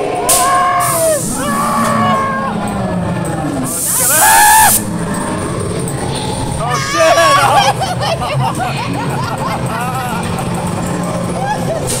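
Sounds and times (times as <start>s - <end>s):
low steady rumble: 0.0s - 11.9s
loud burst of hiss: 0.3s - 1.4s, 3.7s - 4.8s
short high-pitched scream: 4.0s - 4.8s.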